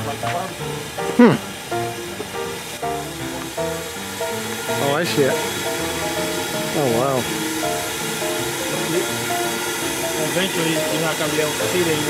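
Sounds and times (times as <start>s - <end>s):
background music of held notes: 0.0s - 12.0s
steam car burner hissing: 0.0s - 12.0s.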